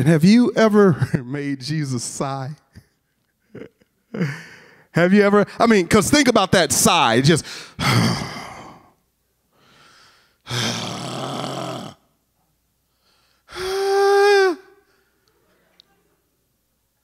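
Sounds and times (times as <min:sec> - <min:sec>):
man sighing: 0:13.5 - 0:15.0.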